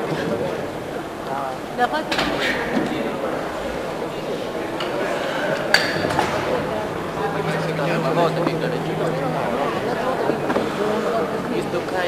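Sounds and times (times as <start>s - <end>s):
low steady hum: 0.0s - 12.0s
murmur of voices: 0.0s - 12.0s.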